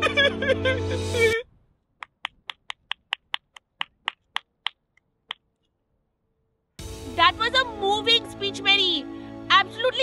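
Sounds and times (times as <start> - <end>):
finger snapping: 2.0 - 5.4.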